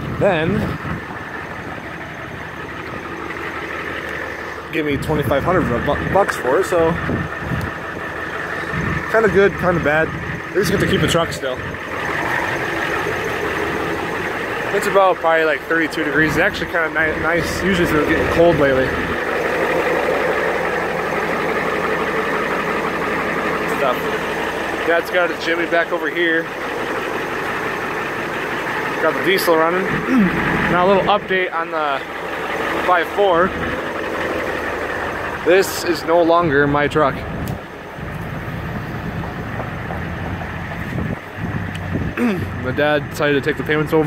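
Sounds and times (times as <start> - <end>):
diesel truck engine idling: 0.0 - 44.0.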